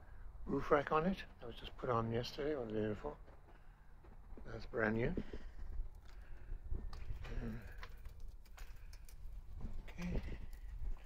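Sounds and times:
footsteps on pavement: 2.9 - 7.2.

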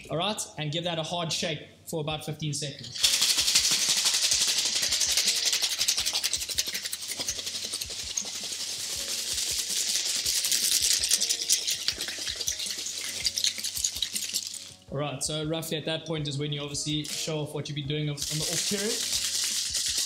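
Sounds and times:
ice rattling in cocktail shaker: 2.8 - 14.8, 17.0 - 17.3, 18.2 - 20.0.

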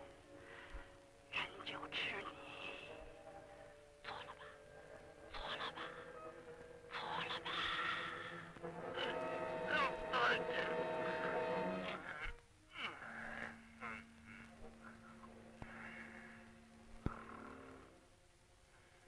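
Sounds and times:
person's strained gliding vocals: 6.9 - 18.0
held musical notes: 8.5 - 12.4
long low note: 8.6 - 12.2.

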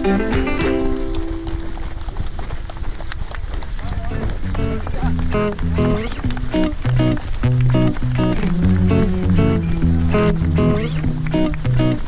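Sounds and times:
background music: 0.0 - 1.8, 5.4 - 12.0
footsteps on gravel: 0.0 - 7.6
people's voices: 3.7 - 12.0.

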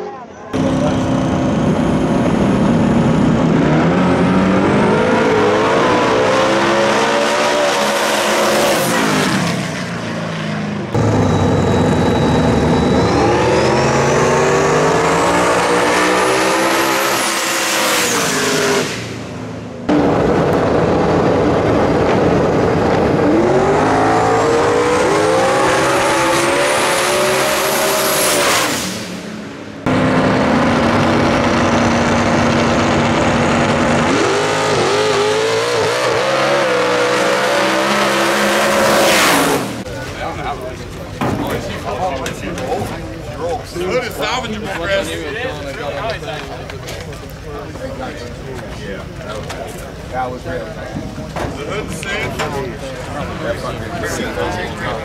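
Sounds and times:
high whine: 0.4 - 6.1, 9.4 - 17.3
race cars accelerating: 0.5 - 43.0.

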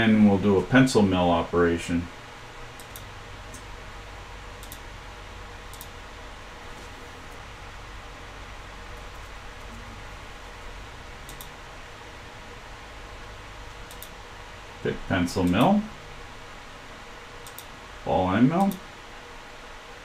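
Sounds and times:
room hiss with faint hum: 0.0 - 20.0
computer mouse clicks: 2.8 - 3.6, 4.6 - 4.8, 5.7 - 6.0, 11.2 - 11.5, 13.7 - 14.2, 17.4 - 17.7.

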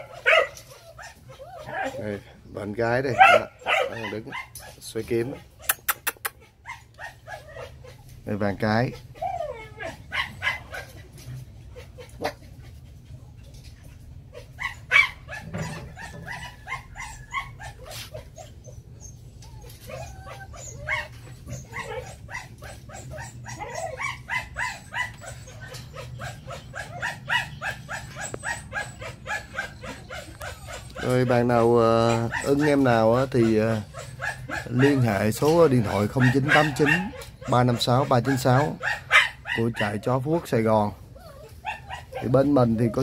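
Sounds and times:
puppy yelping: 0.0 - 2.2, 2.8 - 12.9, 13.8 - 43.0
puppies yipping and whining: 0.0 - 43.0.

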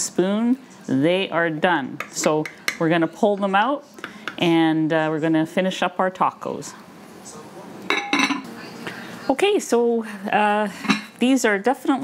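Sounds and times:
metal spoon clinking dishes: 7.9 - 8.5, 10.8 - 11.2.

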